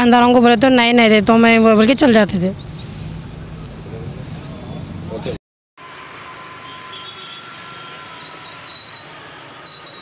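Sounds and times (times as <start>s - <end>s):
high-pitched squealing tones: 5.9s - 10.0s.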